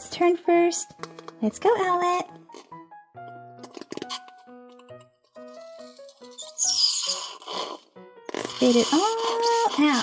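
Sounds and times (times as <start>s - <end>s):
background music simple melody: 0.0s - 10.0s.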